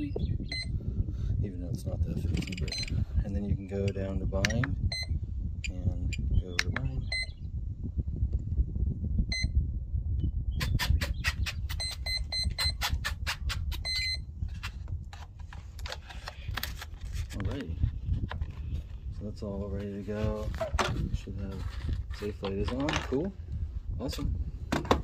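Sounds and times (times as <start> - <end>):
wind rumbling on microphone: 0.0 - 25.0
transmitter clicks: 3.8 - 7.4.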